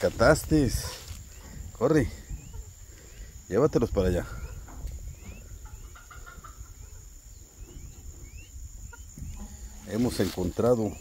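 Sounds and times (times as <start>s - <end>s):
turkey poults peeping: 0.0s - 11.0s
turkey hen clucking: 0.5s - 2.8s, 4.0s - 10.1s.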